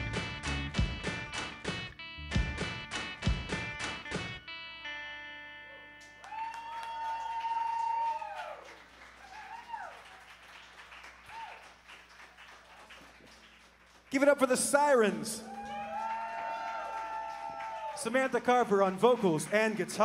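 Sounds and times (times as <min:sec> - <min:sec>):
rock band playing: 0:00.0 - 0:05.0
audience cheering and applauding: 0:06.2 - 0:20.0.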